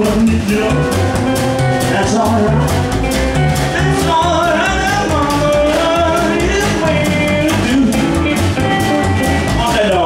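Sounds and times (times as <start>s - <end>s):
acoustic rhythm guitar: 0.0s - 10.0s
drum kit beat: 0.0s - 10.0s
electric lead guitar: 0.0s - 10.0s
upright bass: 0.0s - 10.0s.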